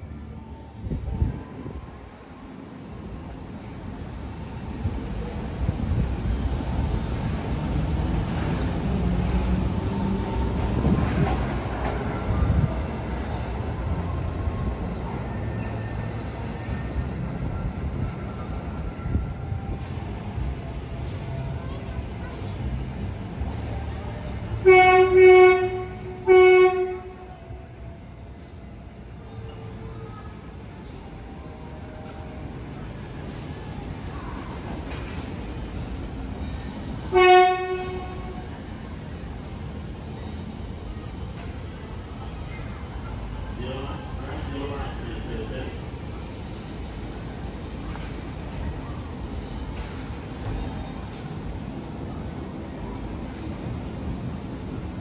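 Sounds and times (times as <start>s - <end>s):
monorail train rumbling: 0.0s - 55.0s
train horn blast: 24.6s - 27.3s, 37.1s - 38.4s.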